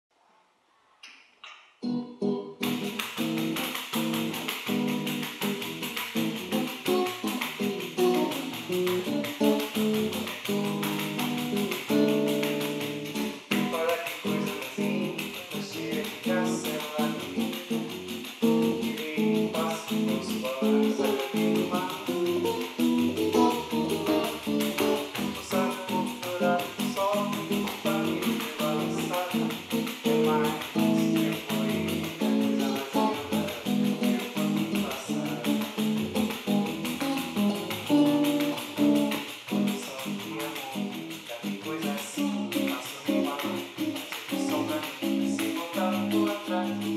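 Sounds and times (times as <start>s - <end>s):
nylon-string guitar strumming: 1.8s - 46.9s
tambourine jingles: 2.6s - 46.9s.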